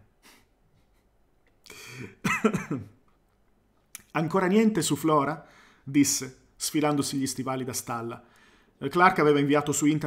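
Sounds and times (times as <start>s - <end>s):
man coughing and clearing throat: 1.7s - 3.1s.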